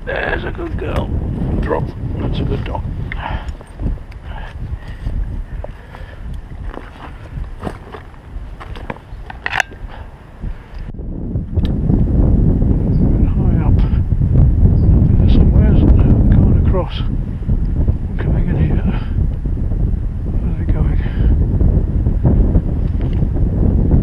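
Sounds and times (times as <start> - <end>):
wind buffeting microphone: 0.0 - 24.0
handling knocks and rustles: 4.8 - 9.9.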